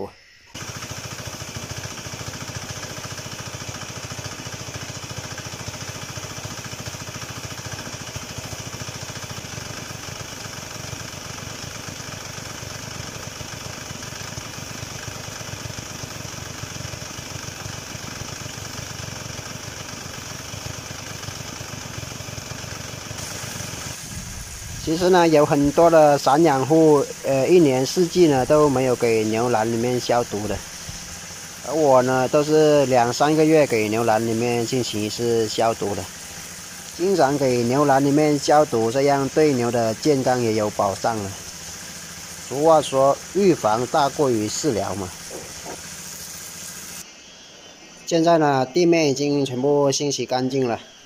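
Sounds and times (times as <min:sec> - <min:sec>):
small motor humming: 0:00.0 - 0:48.3
water rushing from hose: 0:00.0 - 0:51.0.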